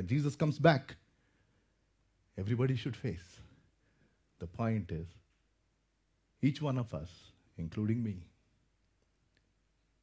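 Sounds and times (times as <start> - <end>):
man's voice: 0.0 - 1.0, 2.4 - 3.5, 4.4 - 5.2, 6.4 - 8.4.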